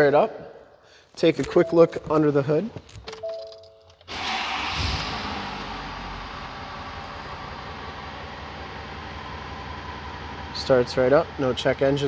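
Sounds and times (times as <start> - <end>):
diesel engine starting and idling: 4.1 - 12.0.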